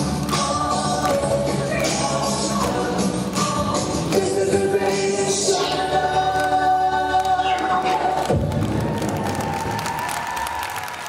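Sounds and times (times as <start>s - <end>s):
audience applauding and cheering: 4.8s - 11.0s.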